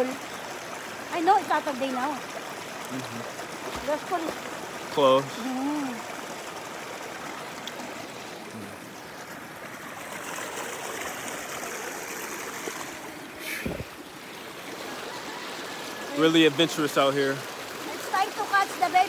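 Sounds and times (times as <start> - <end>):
river flowing over rocks: 0.0 - 19.0.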